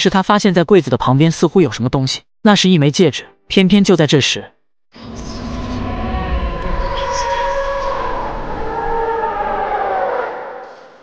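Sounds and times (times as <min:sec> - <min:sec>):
low rumble: 0:05.0 - 0:09.3.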